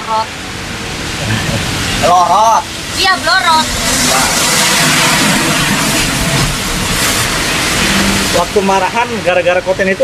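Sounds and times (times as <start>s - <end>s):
loud steady low rumble: 0.0s - 10.0s.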